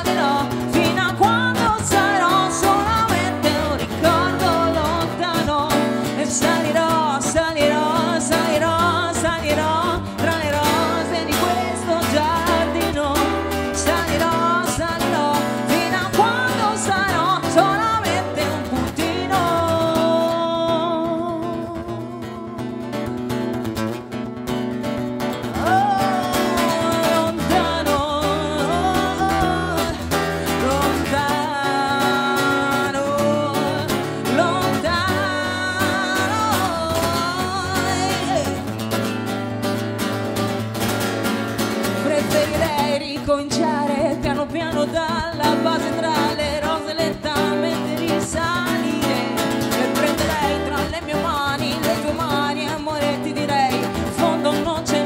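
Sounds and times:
person singing: 0:00.0 - 0:23.6, 0:25.4 - 0:39.3, 0:41.7 - 0:55.0
acoustic guitar strumming: 0:00.0 - 0:55.0.

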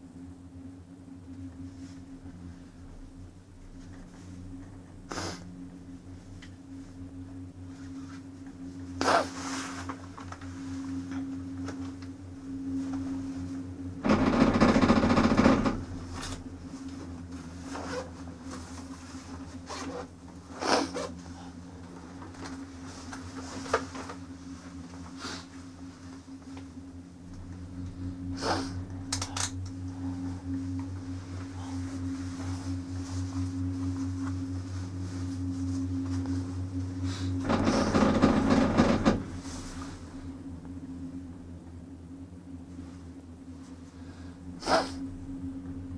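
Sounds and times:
steady low hum: 0:00.0 - 0:45.9
chairlift rattling clunks: 0:14.0 - 0:16.4, 0:37.4 - 0:39.8.

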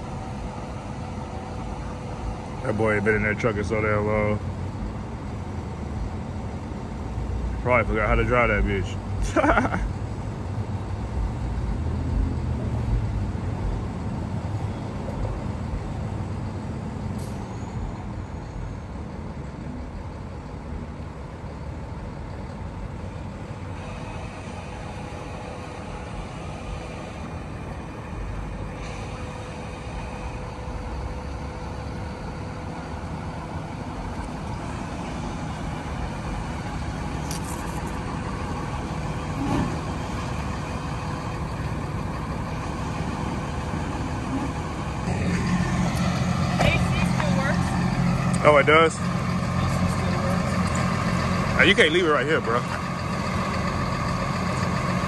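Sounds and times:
diesel truck engine driving slowly: 0:00.0 - 0:55.0.

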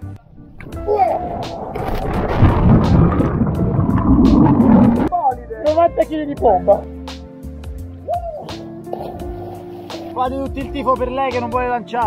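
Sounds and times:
wind rush over microphone: 0:00.0 - 0:05.1
background music: 0:00.0 - 0:12.0
underwater bubbles churning: 0:00.2 - 0:05.1
camera plunging into water: 0:00.5 - 0:05.1.

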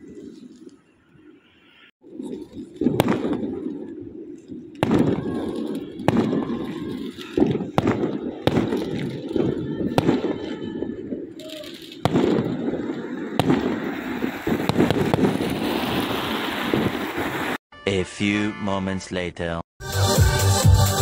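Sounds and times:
fireworks bangs: 0:02.0 - 0:17.6.

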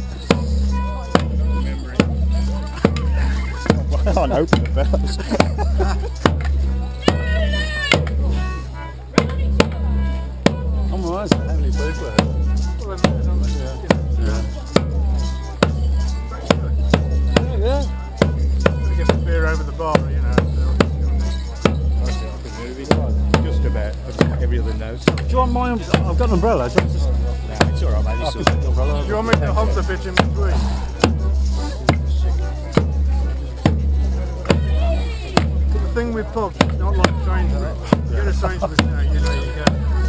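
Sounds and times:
bass drum beat: 0:00.0 - 0:40.0
crowd voices: 0:00.0 - 0:40.0
dance band playing: 0:00.0 - 0:40.0.

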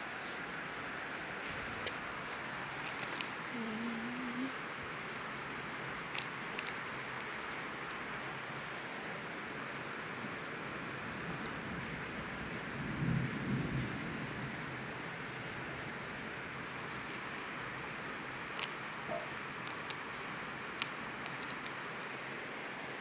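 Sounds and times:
background hiss: 0:00.0 - 0:23.0
paper pads clicking: 0:02.4 - 0:03.4, 0:06.0 - 0:08.0, 0:18.5 - 0:20.1, 0:20.7 - 0:21.9.

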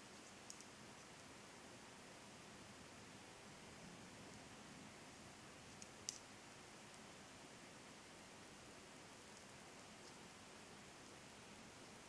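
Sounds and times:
faint steady hiss: 0:00.0 - 0:12.0
knitting needles clicking: 0:00.2 - 0:01.1, 0:05.7 - 0:06.3.

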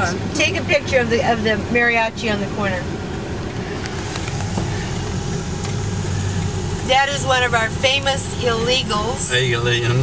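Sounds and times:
car cabin noise: 0:00.0 - 0:10.0
car engine humming: 0:00.0 - 0:10.0.

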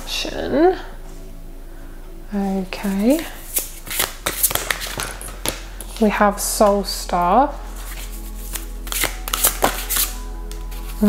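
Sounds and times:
background music with held notes: 0:00.0 - 0:11.0
cards snapping and flicking: 0:03.4 - 0:05.7, 0:08.5 - 0:10.6.

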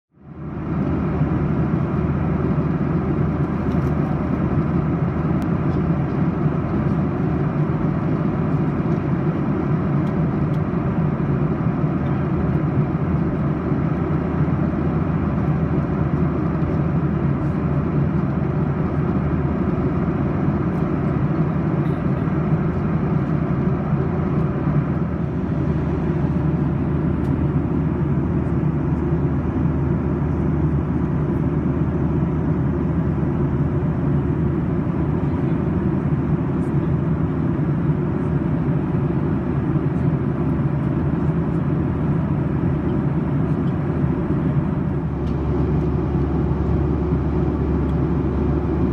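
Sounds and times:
airplane cabin engine rumble: 0:00.1 - 0:48.9.

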